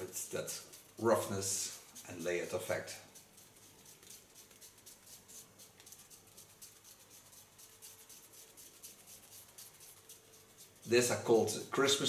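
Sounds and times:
faint steady hum: 0.0s - 12.0s
hot razor scratching hair: 0.0s - 12.0s.

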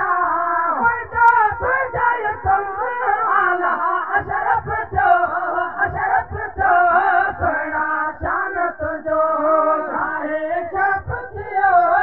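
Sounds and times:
man singing into microphone: 0.0s - 12.0s.

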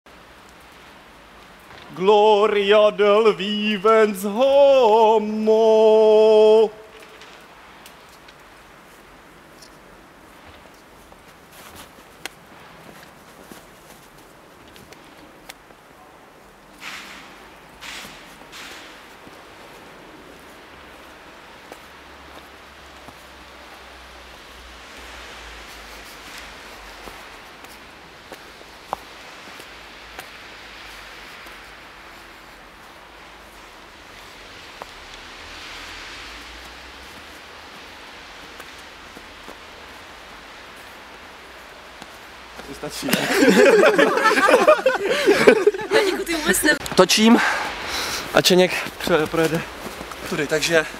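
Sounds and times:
faint hiss: 0.1s - 50.9s.

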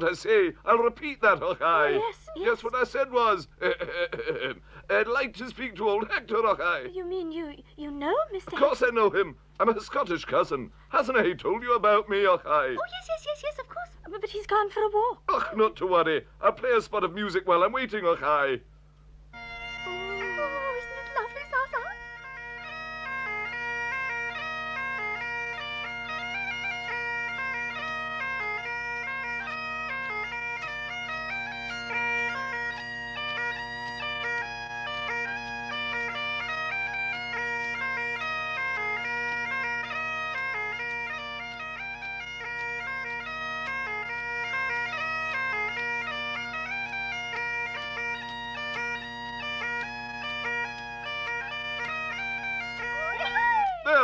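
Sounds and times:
bagpipes playing: 0.0s - 6.9s, 19.3s - 54.0s.

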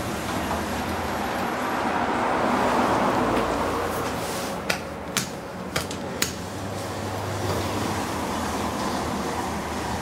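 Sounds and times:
vehicle passing: 0.8s - 4.7s.

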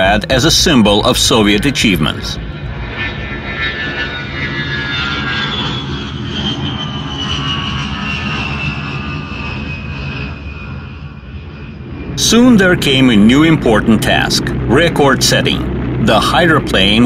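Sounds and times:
jet aircraft flying past: 0.0s - 17.0s.

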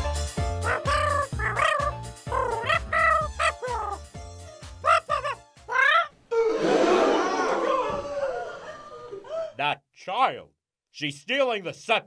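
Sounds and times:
cartoon music with sliding melody: 0.0s - 6.8s.

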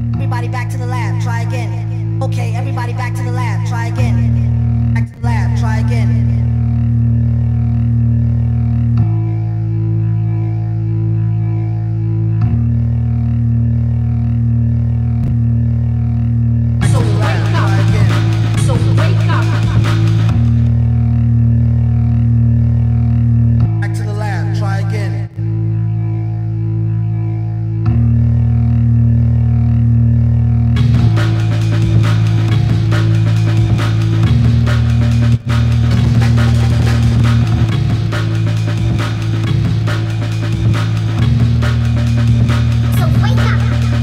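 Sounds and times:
synthesizer bass drone: 0.0s - 44.0s.

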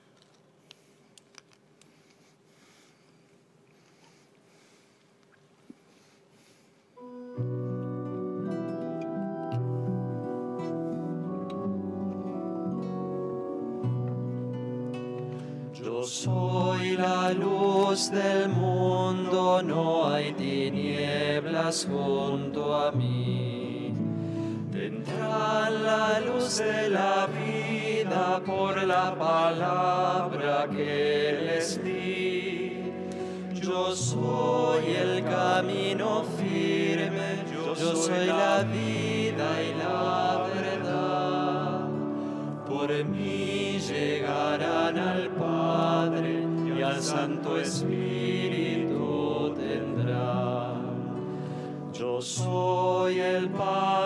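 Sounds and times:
slow sung melody: 0.0s - 54.0s
held accompaniment chords: 7.0s - 54.0s
person singing a hymn: 15.2s - 54.0s.

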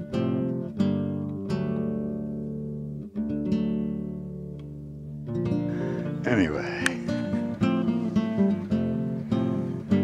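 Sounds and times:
acoustic guitar chords strummed: 0.0s - 10.0s.

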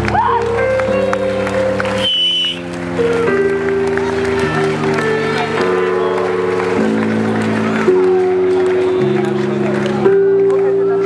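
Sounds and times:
high whistling tone: 2.0s - 2.6s.

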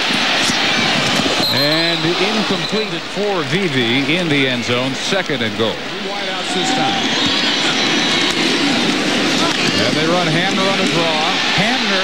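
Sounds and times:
stadium crowd roar: 0.0s - 12.0s.

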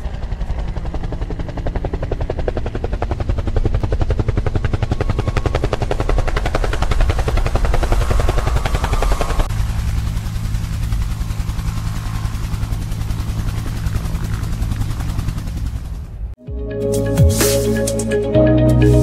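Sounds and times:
helicopter rotor chop: 0.0s - 16.4s
low engine drone: 3.6s - 19.0s.

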